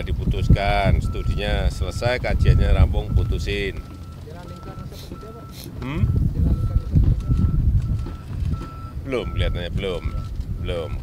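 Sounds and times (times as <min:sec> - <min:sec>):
wind rumble on microphone: 0:00.0 - 0:04.0, 0:04.7 - 0:11.0
machine warning beeper: 0:00.4 - 0:11.0.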